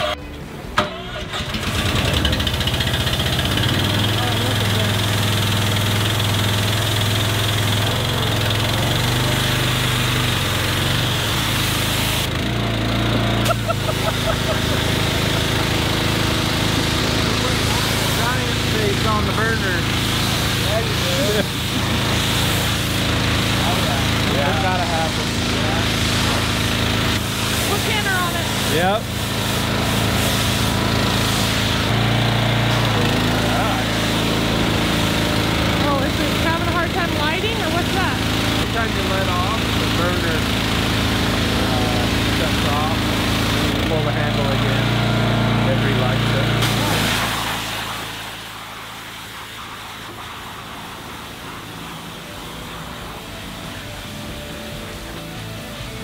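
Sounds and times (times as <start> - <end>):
pressure washer engine running: 0.0 - 56.0.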